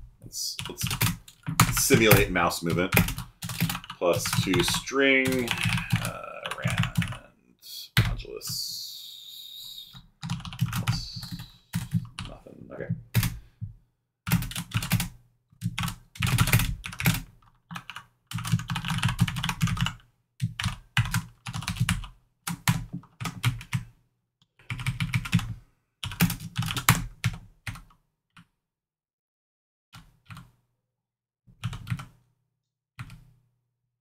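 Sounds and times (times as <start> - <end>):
typing on a keyboard: 0.6 - 7.2, 10.2 - 12.3, 14.3 - 23.8, 24.6 - 27.9, 31.6 - 32.2.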